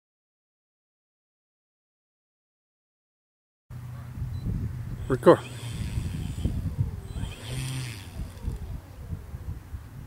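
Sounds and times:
distant engine running: 3.7s - 9.7s
wind buffeting microphone: 3.8s - 10.0s.

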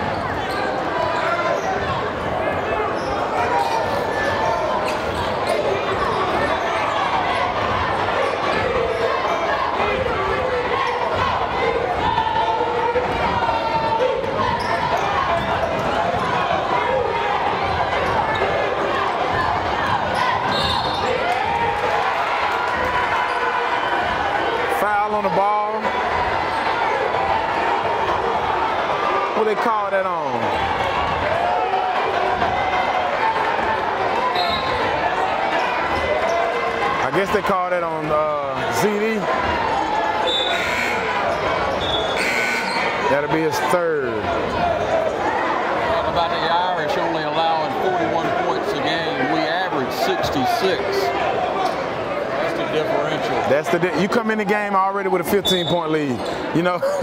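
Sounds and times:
crowd chatter and calls: 0.0s - 57.0s.

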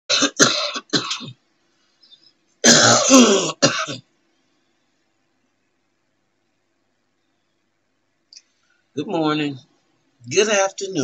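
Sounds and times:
woman coughing: 0.1s - 1.3s, 2.6s - 4.0s
woman clearing her throat: 2.6s - 4.0s.

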